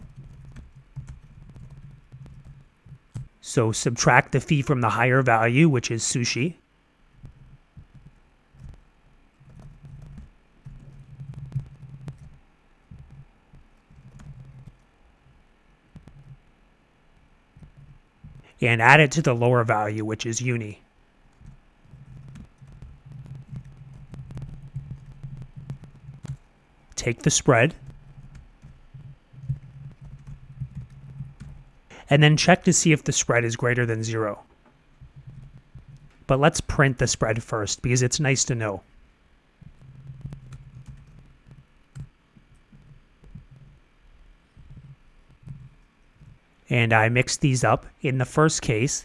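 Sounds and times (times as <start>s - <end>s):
computer keyboard typing: 0.0s - 3.4s, 7.1s - 16.5s, 17.1s - 19.1s, 21.3s - 38.7s, 39.6s - 46.5s.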